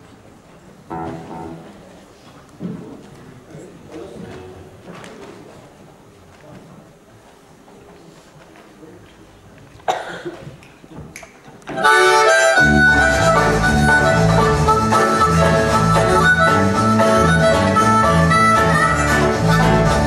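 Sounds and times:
picked banjo: 0.9 - 1.8, 11.8 - 20.0
harmonica lead: 11.8 - 20.0
steady low beat: 12.4 - 20.0.

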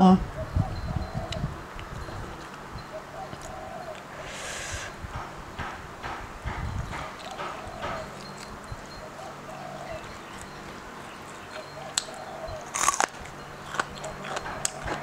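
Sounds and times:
chewing: 10.0 - 15.0.

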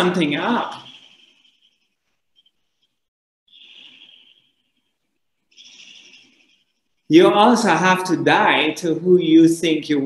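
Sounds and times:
faint high bird call: 3.5 - 6.9.

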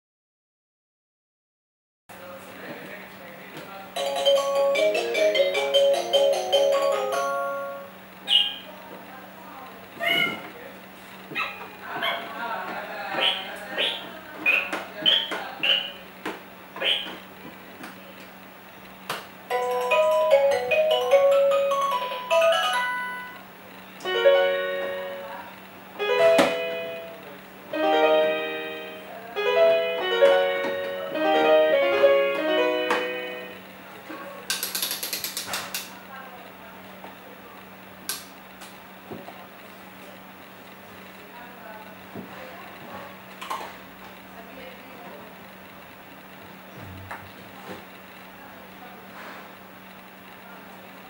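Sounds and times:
tinkly toy melody: 4.0 - 7.9, 19.5 - 23.4
toy electronic sound effects: 13.2 - 16.0, 16.8 - 17.2.

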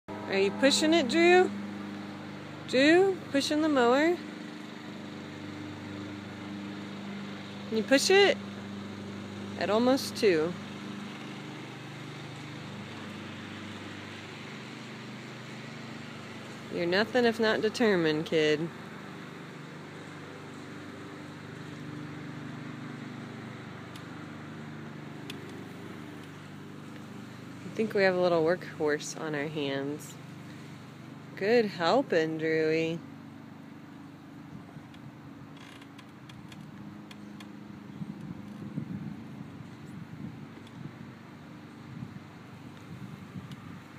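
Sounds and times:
motor humming: 0.1 - 31.1
lawn mower wheels clicking and creaking: 0.1 - 43.9.

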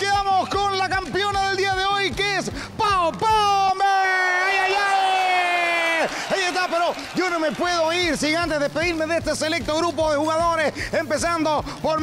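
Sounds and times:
person shouting: 2.8 - 6.1.

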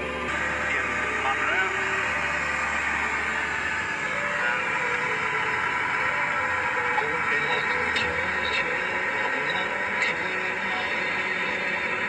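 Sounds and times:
low steady hum: 0.0 - 12.0
music on radio: 0.0 - 12.0
radio voices: 0.0 - 12.0.

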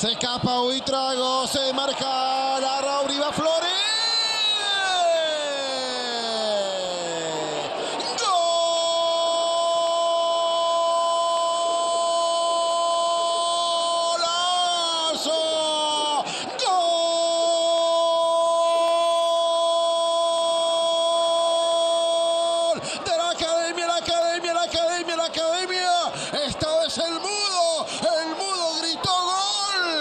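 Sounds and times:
commentator's drawn-out goal cry: 0.0 - 30.0
quick breath: 7.8 - 8.1, 16.2 - 16.6, 26.1 - 26.4, 27.8 - 28.1.

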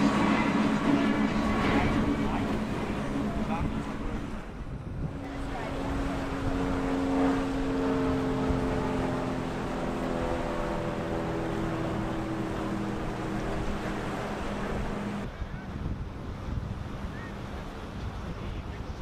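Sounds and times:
outboard engine drone: 0.0 - 19.0
water noise: 0.0 - 19.0
wind: 0.0 - 19.0.

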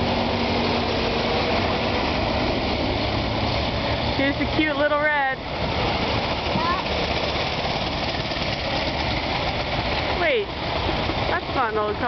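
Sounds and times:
car engine chugging: 0.0 - 12.0
road noise: 0.0 - 12.0.

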